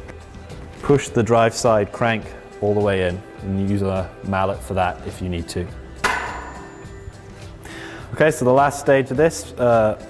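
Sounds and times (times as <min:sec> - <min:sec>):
mallet striking metal crank arm: 0:06.0 - 0:07.0.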